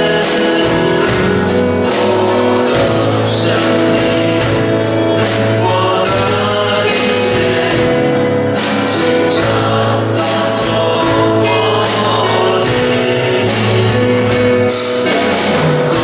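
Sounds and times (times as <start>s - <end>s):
group singing worship song: 0.0s - 16.0s
instrumental accompaniment with beat: 0.0s - 16.0s.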